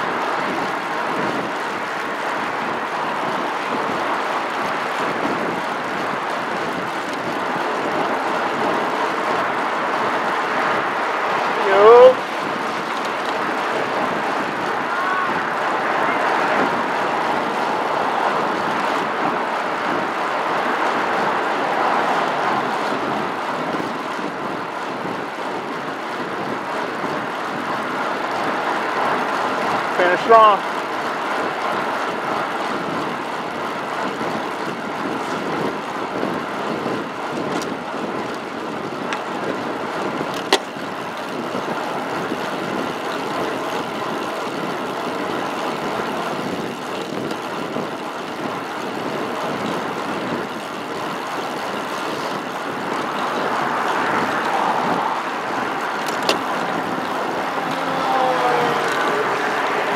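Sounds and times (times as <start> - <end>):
passing motor traffic: 0.0 - 59.9
wind and road noise: 0.0 - 59.9.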